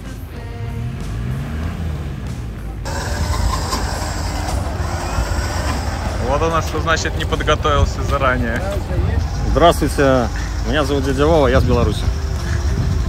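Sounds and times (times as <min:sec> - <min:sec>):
background music: 0:00.0 - 0:13.0
car engine straining: 0:00.0 - 0:13.0.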